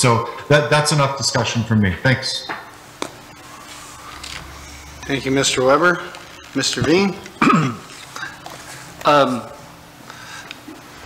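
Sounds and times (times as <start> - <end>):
man clearing throat: 7.3 - 8.4.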